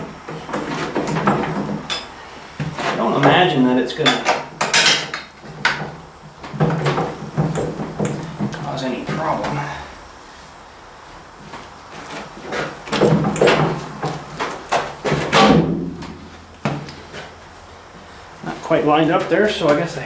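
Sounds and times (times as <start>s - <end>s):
man talking: 2.8s - 4.4s, 8.6s - 9.9s, 18.4s - 20.0s
metal clinks and knocks: 4.0s - 5.9s.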